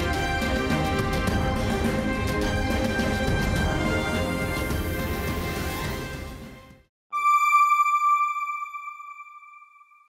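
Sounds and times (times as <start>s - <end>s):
electronic chime note: 7.2s - 10.0s.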